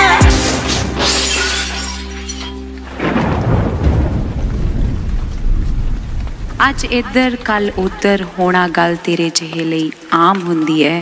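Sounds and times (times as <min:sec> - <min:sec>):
glass shattering: 0:01.0 - 0:03.6
car crash impact: 0:02.8 - 0:06.6
steady rain: 0:02.8 - 0:11.0
thunder rumble: 0:02.9 - 0:09.2.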